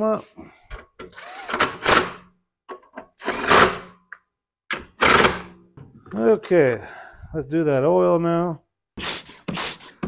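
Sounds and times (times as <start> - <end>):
power drill driving bolts: 1.0 - 2.2, 3.1 - 3.9, 4.7 - 5.6.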